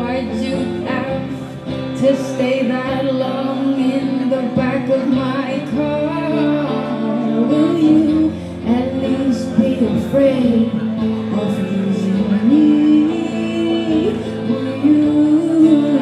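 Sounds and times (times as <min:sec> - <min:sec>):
electric guitar: 0:00.0 - 0:16.0
woman singing: 0:00.0 - 0:16.0.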